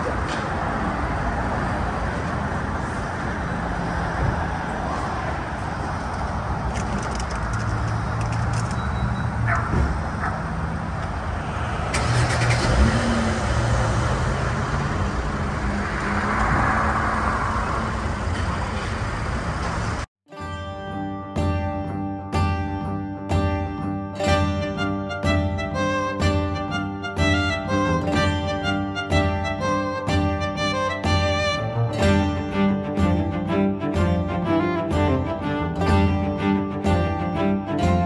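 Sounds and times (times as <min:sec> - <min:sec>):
car engine hum: 0:00.0 - 0:20.1
road rumble: 0:00.0 - 0:20.1, 0:24.2 - 0:38.0.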